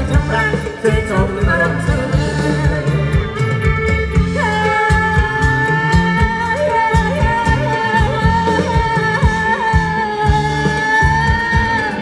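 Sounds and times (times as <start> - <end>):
person singing ornamented line: 0.0 - 12.0
steady drum beat: 0.0 - 12.0.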